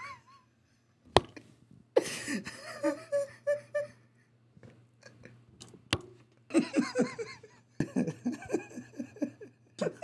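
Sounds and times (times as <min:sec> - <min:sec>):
man wheezy laughing: 0:02.0 - 0:04.0, 0:06.5 - 0:10.0.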